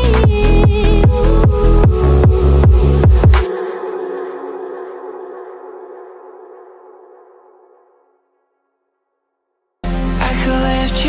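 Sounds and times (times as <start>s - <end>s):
fast heavy kick-drum beat: 0.0s - 3.4s.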